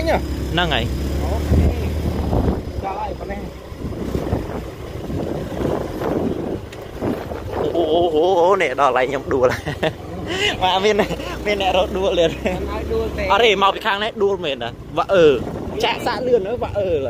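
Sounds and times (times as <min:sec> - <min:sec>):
motorbike engine rumbling: 0:00.0 - 0:17.0
wind on microphone: 0:01.4 - 0:02.8, 0:03.6 - 0:08.2, 0:15.3 - 0:16.2.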